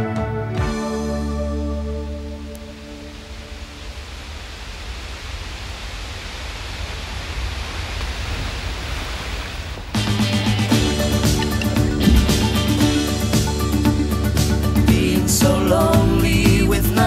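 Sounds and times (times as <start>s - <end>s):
band music with guitar: 0.0s - 2.2s, 10.0s - 17.0s
waterfall rushing: 3.2s - 13.7s.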